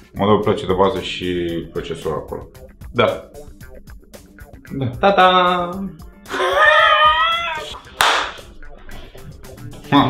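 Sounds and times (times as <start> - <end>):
sharp hand slap: 7.6 - 8.5.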